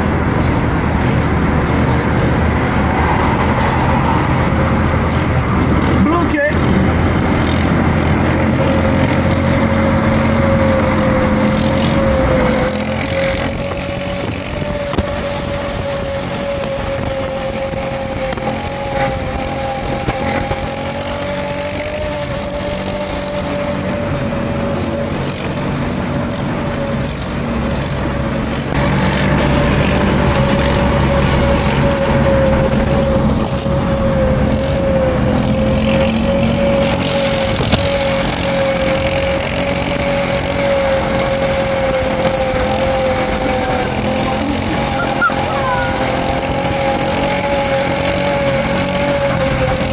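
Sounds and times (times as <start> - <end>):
car road noise: 0.0 - 49.9
constant whistling tone: 44.4 - 46.3.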